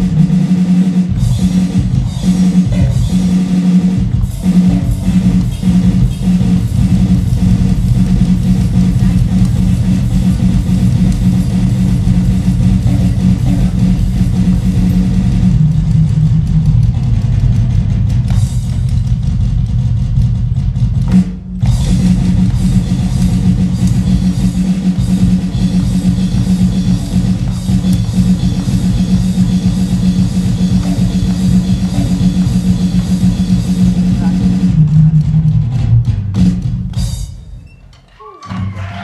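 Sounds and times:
drum kit groove: 0.0 - 39.0.

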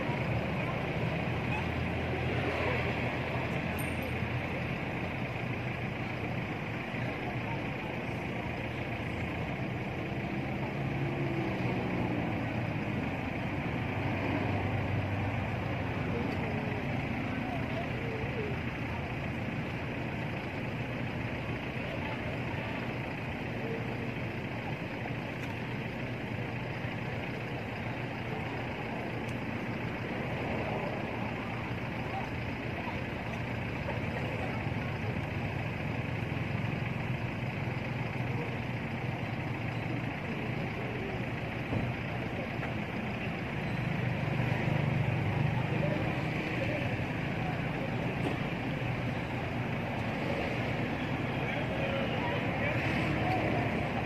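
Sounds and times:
faint indistinct voices: 0.0 - 54.0
low engine rumble: 0.0 - 54.0.

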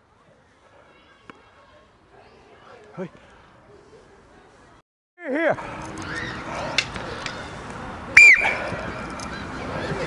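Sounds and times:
shrill whistle blast: 8.2 - 8.6.

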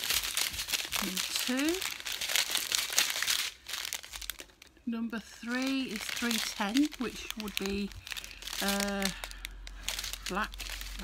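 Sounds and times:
plastic bags crinkling: 0.0 - 11.0.

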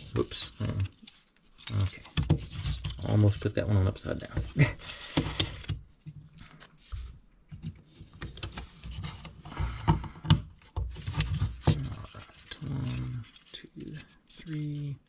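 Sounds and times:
wood rubbing and scraping: 0.0 - 15.0.

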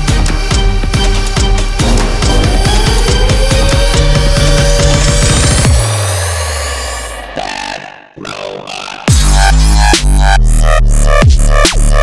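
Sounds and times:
rising high-pitched synth sweep: 1.8 - 8.1.

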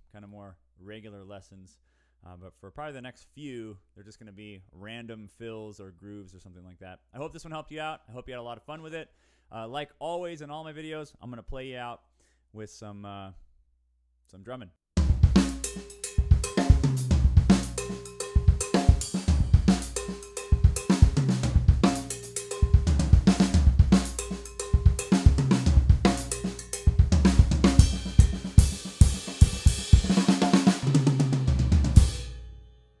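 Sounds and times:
acoustic drum kit groove: 15.0 - 32.8.

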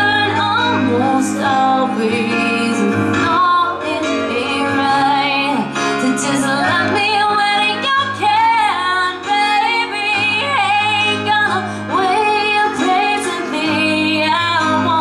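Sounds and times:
band backing: 0.0 - 15.0
woman singing into microphone: 0.0 - 15.0.

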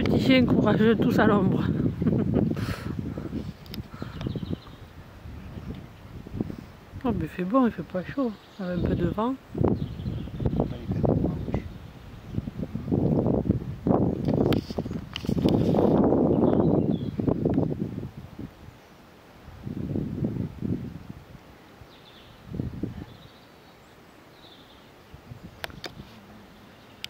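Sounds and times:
wind buffeting microphone: 0.0 - 18.8, 19.4 - 23.4, 25.1 - 26.5.

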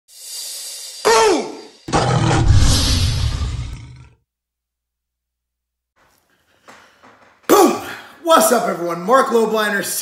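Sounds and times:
low tiger roar: 1.9 - 4.2.

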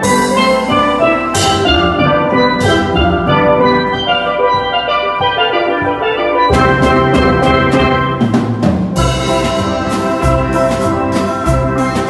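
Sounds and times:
steel pan ensemble playing: 0.0 - 12.0.

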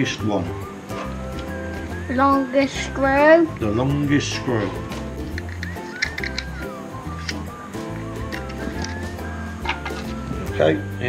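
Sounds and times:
music with low beat: 3.0 - 11.0
light clicks: 5.2 - 7.4.

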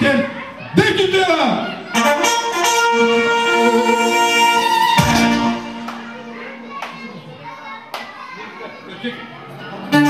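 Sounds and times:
room chatter: 0.0 - 10.0
clarinet and keyboard tune: 1.9 - 6.8.

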